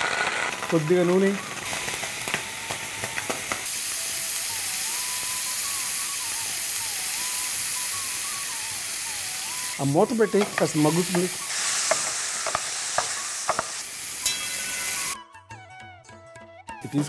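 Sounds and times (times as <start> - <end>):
tomato sizzling in oil: 0.0 - 15.2.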